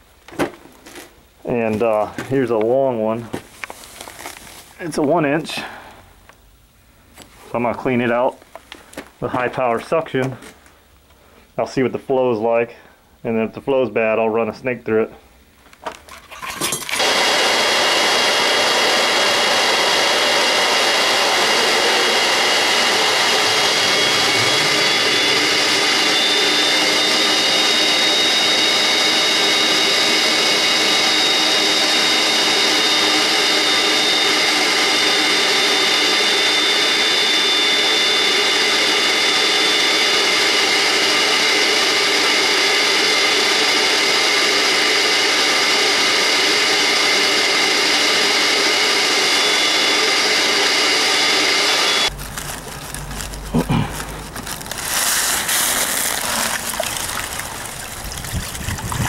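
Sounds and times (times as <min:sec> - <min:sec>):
wet dry vacuum whining: 0:16.8 - 0:59.0.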